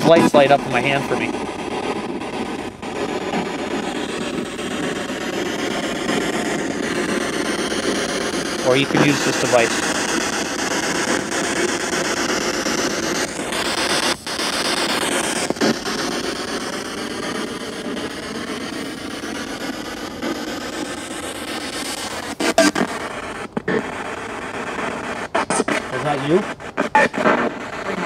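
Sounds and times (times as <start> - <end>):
radio static scanning stations: 0.0 - 28.0.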